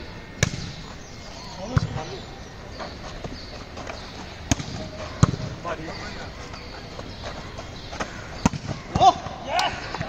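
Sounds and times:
volleyball slaps: 0:00.4 - 0:00.8, 0:04.5 - 0:05.5, 0:08.0 - 0:10.0.

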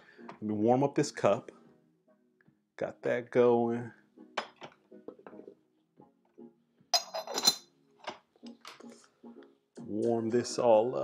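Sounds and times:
soft background music: 0:00.0 - 0:11.0
ceramic teaware clinking: 0:07.0 - 0:08.2.

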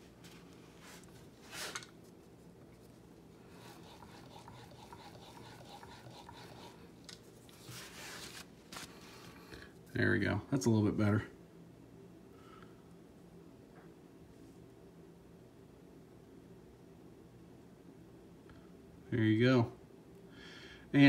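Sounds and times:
chisel scraping on sharpening stone: 0:03.7 - 0:06.8.

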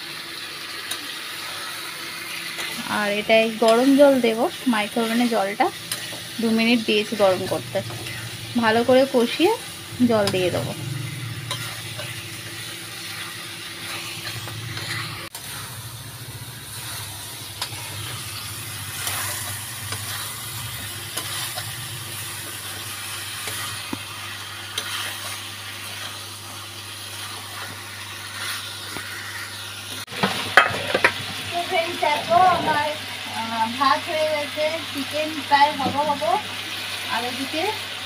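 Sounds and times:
curry sizzling in pan: 0:00.0 - 0:38.0
spatula stirring and scraping: 0:01.4 - 0:31.2
steady low hum: 0:02.6 - 0:27.6.

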